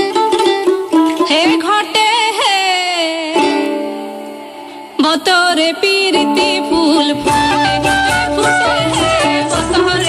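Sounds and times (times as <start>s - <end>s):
instrumental accompaniment: 5.9s - 10.0s.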